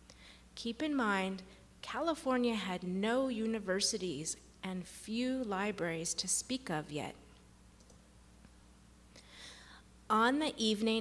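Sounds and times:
faint low hum: 0.0 - 11.0
faint clicks: 7.8 - 8.6.

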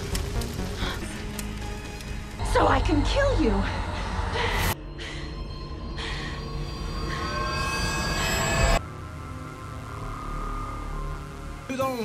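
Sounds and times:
screeching shrill tones: 6.5 - 8.8.

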